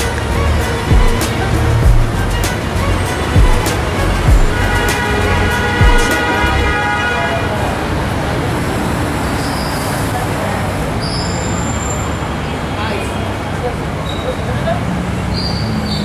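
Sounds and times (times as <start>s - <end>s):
people talking: 0.0s - 9.0s, 9.8s - 11.2s, 12.4s - 15.0s
traffic noise: 0.0s - 16.0s.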